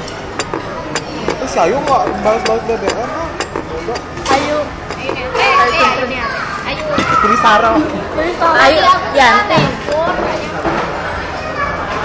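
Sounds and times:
young women talking excitedly: 4.2 - 10.4.

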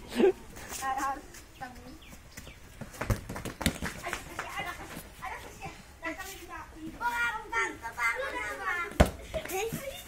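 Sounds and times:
ball kicked on packed earth: 2.4 - 4.5, 8.9 - 9.5.

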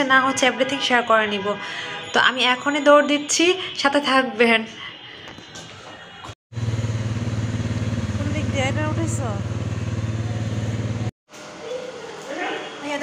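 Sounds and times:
engine running with rapid pulse: 6.5 - 11.1.

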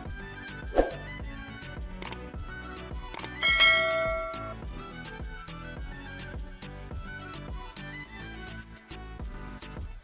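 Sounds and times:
background music: 0.0 - 10.0
short clicks: 2.0 - 2.2, 3.1 - 3.4
bright bell ding: 3.4 - 4.6.

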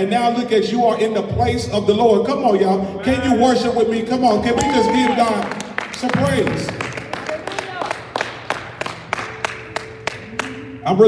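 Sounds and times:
congregation clapping: 4.6 - 10.7.

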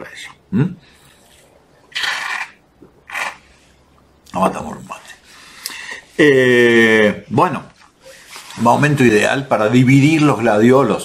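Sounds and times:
slurping through metal straw: 1.9 - 3.8.

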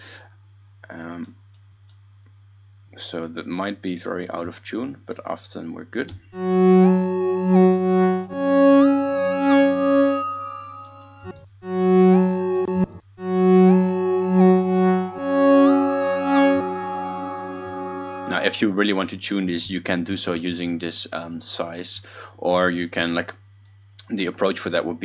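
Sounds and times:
low synth drone: 6.4 - 19.0
buzzy synth phrase: 6.4 - 19.1.

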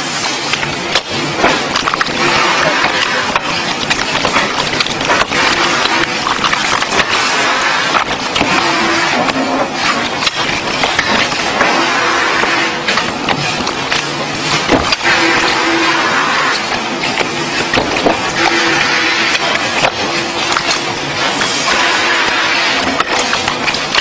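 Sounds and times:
factory workshop noise: 0.0 - 24.0
playing cards clicking and clattering: 0.5 - 11.7, 16.5 - 18.4.

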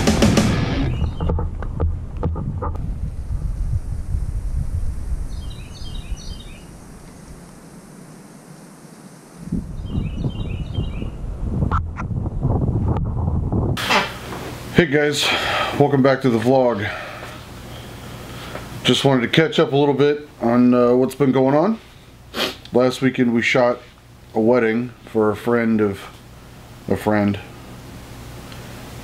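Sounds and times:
rock music: 0.0 - 1.2
bird chirps: 0.8 - 1.4, 5.3 - 6.8, 9.7 - 11.2
wind rumbling on microphone: 0.8 - 8.6, 9.2 - 13.9.

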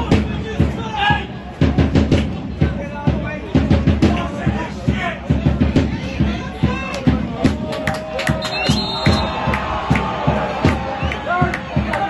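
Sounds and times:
bass drum beating steadily: 0.0 - 7.8, 8.7 - 12.0
people clapping: 2.1 - 2.4, 6.8 - 12.0
crowd chanting: 4.1 - 12.0
people shouting: 4.2 - 12.0.

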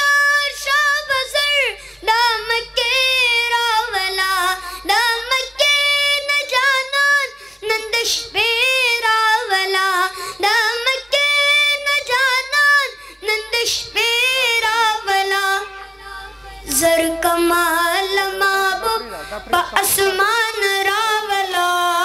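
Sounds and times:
boy singing unaccompanied: 0.0 - 22.0.

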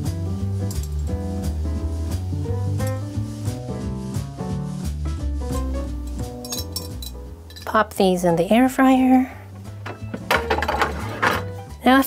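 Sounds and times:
background music: 0.0 - 12.0
glass basket clinking and scraping: 6.4 - 7.7, 9.8 - 11.6.

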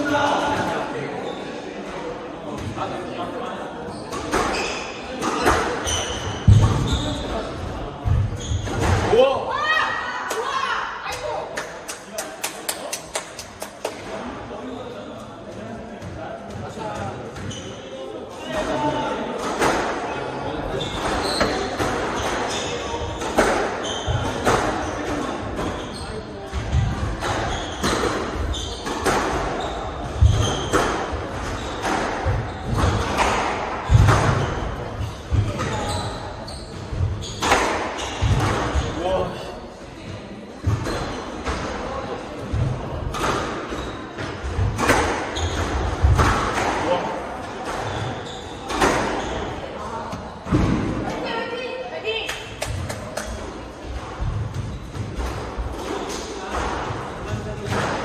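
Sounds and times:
squash ball hitting rackets and walls: 4.1 - 9.4, 20.7 - 25.9, 26.5 - 36.1, 36.8 - 39.0, 40.6 - 51.2.

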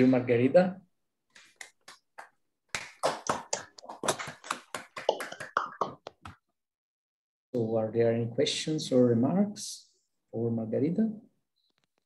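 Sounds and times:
hand clapping: 1.4 - 6.4.

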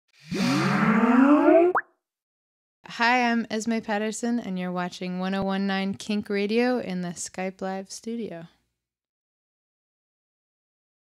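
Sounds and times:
quick upward bloop: 0.2 - 1.9.

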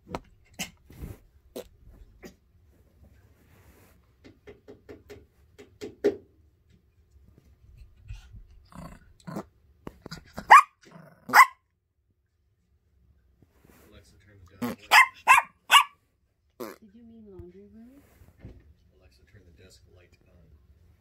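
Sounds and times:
small dog barking: 10.3 - 11.6, 14.8 - 16.0.

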